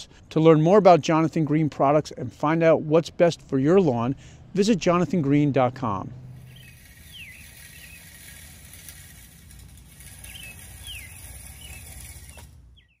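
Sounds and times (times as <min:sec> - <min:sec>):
songbird whistling: 0:06.5 - 0:08.2, 0:10.2 - 0:13.0.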